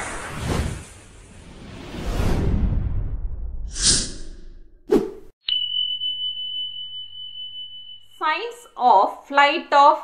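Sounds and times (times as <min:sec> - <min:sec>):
high-pitched ringing tone: 0:05.4 - 0:09.2.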